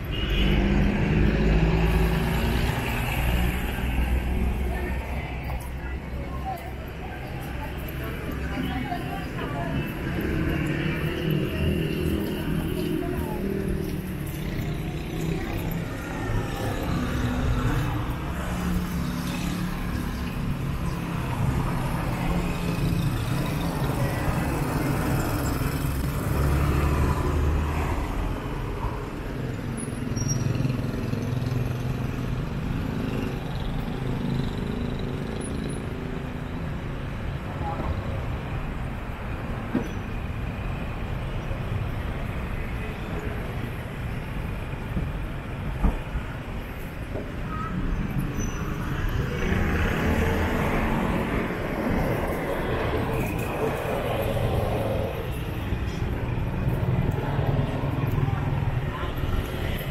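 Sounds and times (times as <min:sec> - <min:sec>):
vehicles passing: 0:00.0 - 0:59.9.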